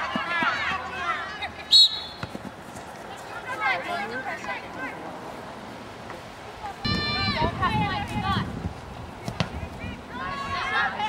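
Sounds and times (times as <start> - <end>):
referee's whistle blast: 1.7 - 2.2.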